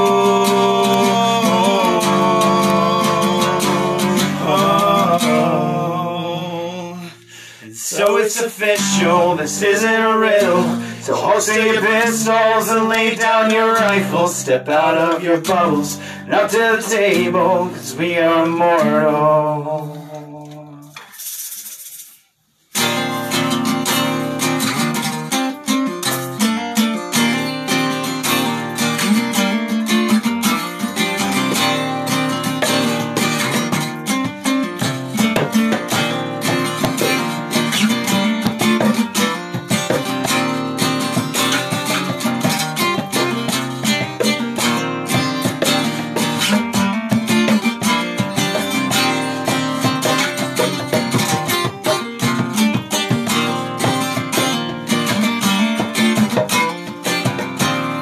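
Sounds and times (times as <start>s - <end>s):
guitar strummed and picked: 0.0s - 20.9s, 22.7s - 58.0s.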